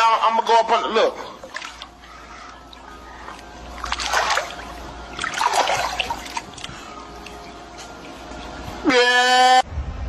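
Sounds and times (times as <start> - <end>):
pool water splashing: 0.8 - 9.1.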